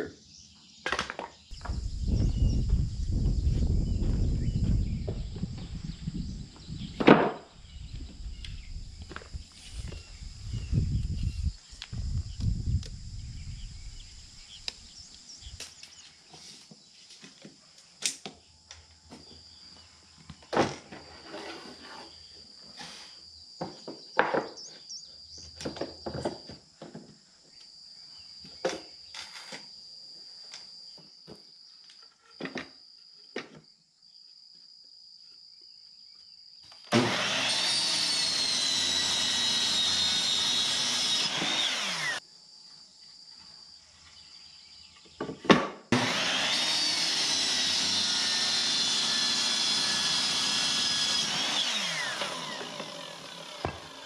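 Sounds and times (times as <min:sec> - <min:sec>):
boards knocking and clattering: 0:07.0 - 0:07.5, 0:23.6 - 0:24.6, 0:25.6 - 0:27.1, 0:45.1 - 0:45.8
miter saw cutting wood: 0:36.9 - 0:42.2, 0:45.9 - 0:54.0.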